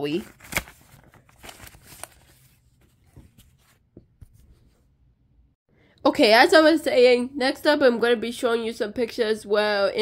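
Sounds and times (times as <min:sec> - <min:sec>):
paper prints rustling: 0:00.0 - 0:04.8.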